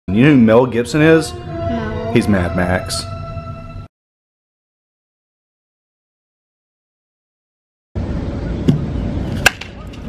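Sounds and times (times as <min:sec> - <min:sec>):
baseball bat hitting ball: 0:09.4 - 0:10.0.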